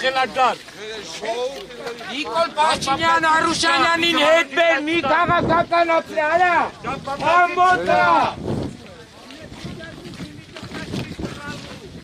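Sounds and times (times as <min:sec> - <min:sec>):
people talking: 0:00.0 - 0:12.0
wind noise on microphone: 0:02.6 - 0:12.0.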